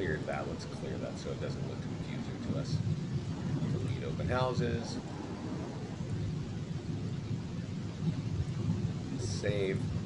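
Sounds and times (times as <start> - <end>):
low rumbling line noise: 0.0 - 10.0.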